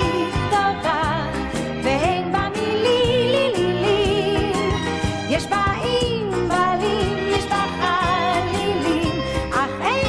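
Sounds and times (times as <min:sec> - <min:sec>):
full band accompaniment: 0:00.0 - 0:10.0
high wordless vocal melody: 0:00.0 - 0:10.0.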